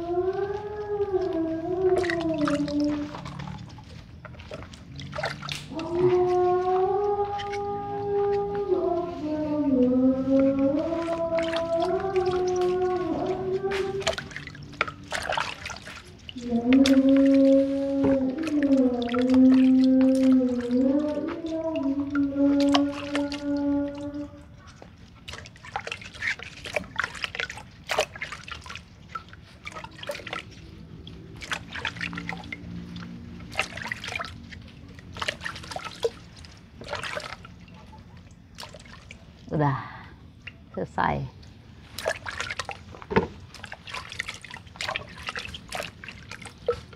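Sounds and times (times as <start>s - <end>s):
person humming a slow tune: 0.0s - 3.6s, 5.7s - 14.4s, 16.3s - 24.6s
water splashing and dripping: 0.0s - 46.9s.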